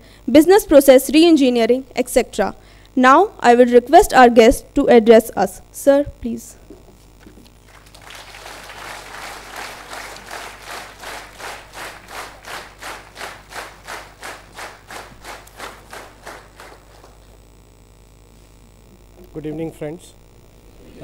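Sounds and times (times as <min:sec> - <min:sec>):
audience clapping in unison: 0:07.2 - 0:17.4.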